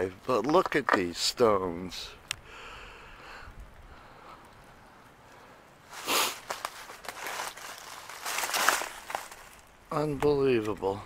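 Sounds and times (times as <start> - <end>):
footsteps crunching dry leaves: 5.9 - 9.8
twigs snapping: 6.3 - 10.8.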